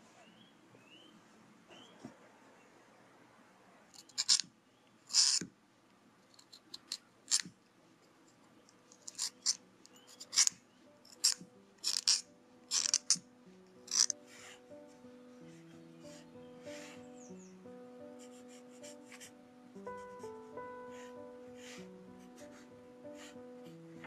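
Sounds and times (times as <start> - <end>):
pencil being sharpened: 3.9 - 4.5, 5.1 - 5.5, 6.3 - 7.5, 8.9 - 13.2, 13.9 - 14.2
soft background music: 8.5 - 24.0.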